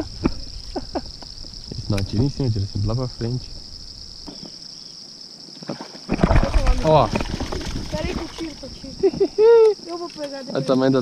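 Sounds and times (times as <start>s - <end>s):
insects chirping: 0.0s - 11.0s.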